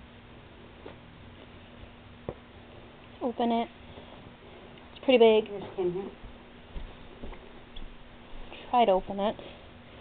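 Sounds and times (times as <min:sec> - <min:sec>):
steady low hum: 0:00.0 - 0:10.0
soft taps and rustles: 0:00.8 - 0:02.5, 0:05.5 - 0:08.5.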